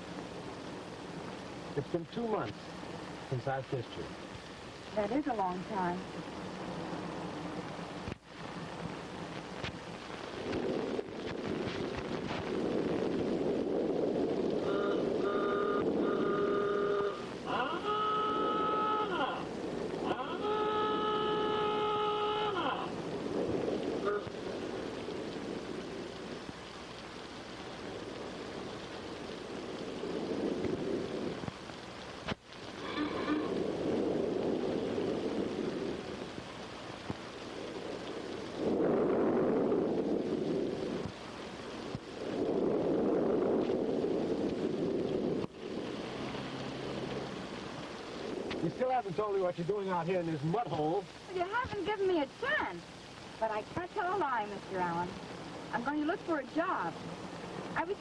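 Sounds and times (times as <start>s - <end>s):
rushing noise of rain: 0.0s - 58.0s
car horn blasts: 14.6s - 19.4s, 20.0s - 22.9s.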